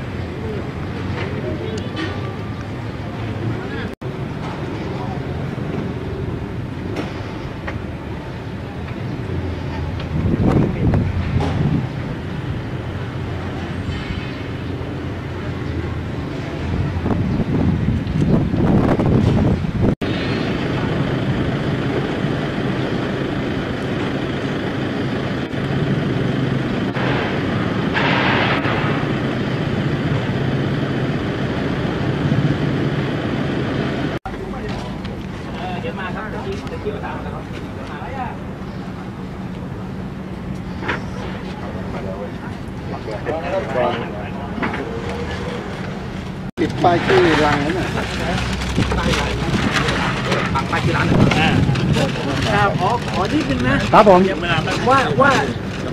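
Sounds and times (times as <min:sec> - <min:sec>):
low outdoor rumble: 0:00.0 - 0:55.9.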